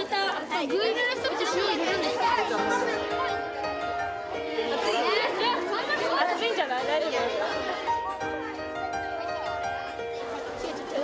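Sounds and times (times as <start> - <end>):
children chattering: 0.0 - 11.0
background music with held notes: 0.5 - 11.0.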